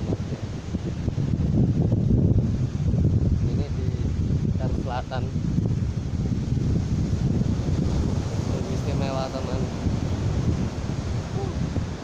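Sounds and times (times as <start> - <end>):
breaking surf: 0.0 - 12.0
wind buffeting microphone: 0.0 - 12.0.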